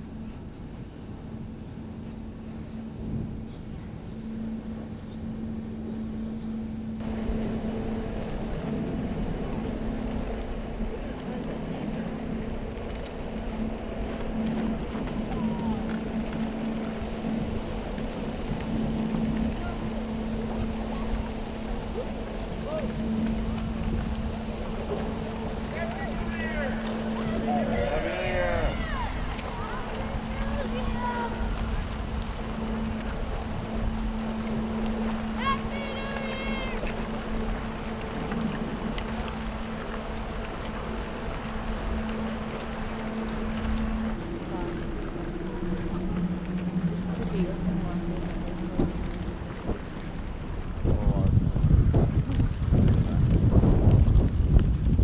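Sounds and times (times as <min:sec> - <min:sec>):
ship diesel engines droning: 0:00.0 - 0:10.4, 0:11.4 - 0:50.9.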